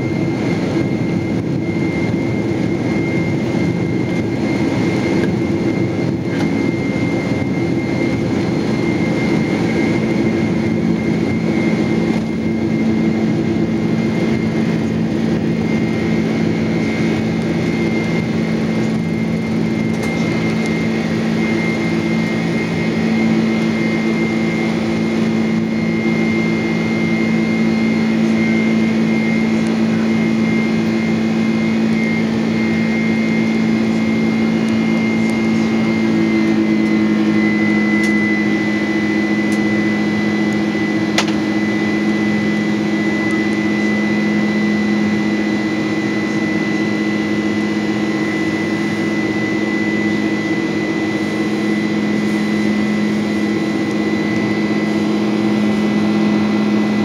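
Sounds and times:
high engine whine: 0.0s - 57.0s
jet engines drone: 0.0s - 57.0s.

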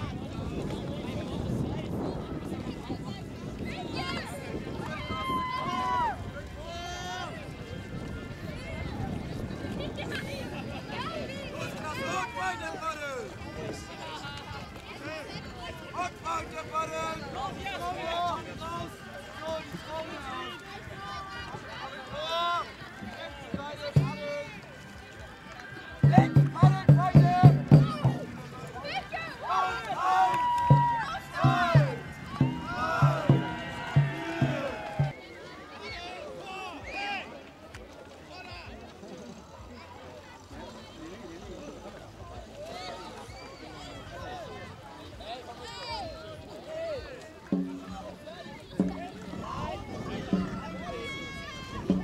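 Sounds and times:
murmur of voices: 0.0s - 52.0s
drum booming hits: 26.0s - 28.6s, 30.7s - 35.2s, 47.6s - 52.0s.

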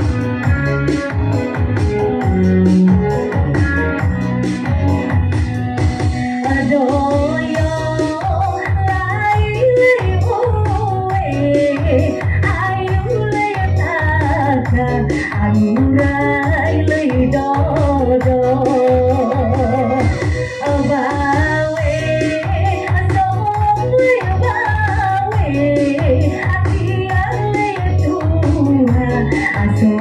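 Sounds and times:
electronic keyboard accompaniment: 0.0s - 30.0s
steady bass beat: 0.0s - 30.0s
woman singing into a microphone: 6.3s - 30.0s.

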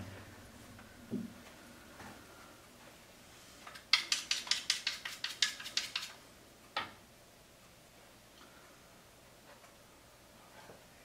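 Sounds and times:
chalk scraping on cue tip: 3.9s - 6.1s.

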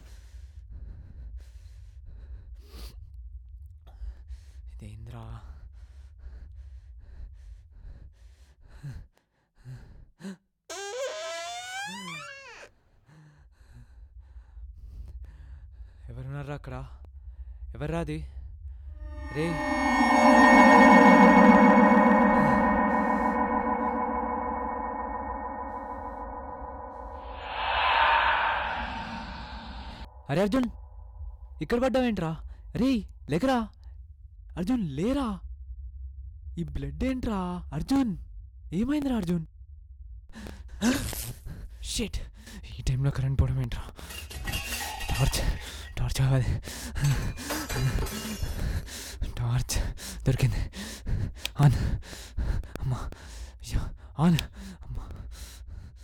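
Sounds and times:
high rising tone: 19.0s - 30.4s
low rumbling drone: 19.0s - 30.4s.

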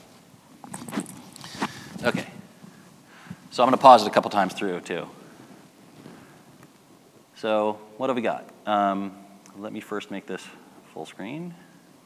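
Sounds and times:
rustling: 0.0s - 3.9s, 4.5s - 7.3s.

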